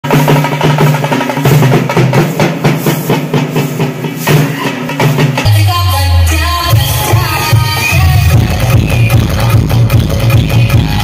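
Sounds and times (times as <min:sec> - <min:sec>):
large drums beaten with sticks: 0:00.0 - 0:05.6.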